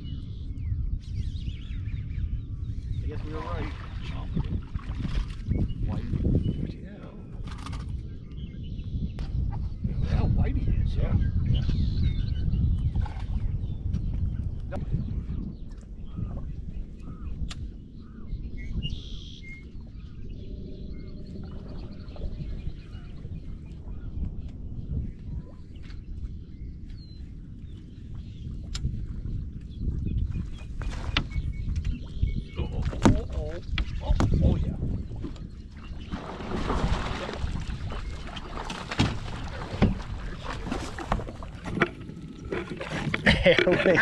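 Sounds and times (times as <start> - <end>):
wind rumble on microphone: 0.0 - 44.0
water against boat hull: 3.1 - 8.0, 29.9 - 44.0.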